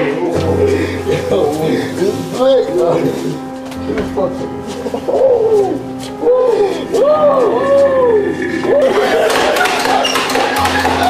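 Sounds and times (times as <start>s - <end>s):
voice moaning and hooting: 0.0s - 3.5s, 4.1s - 9.3s.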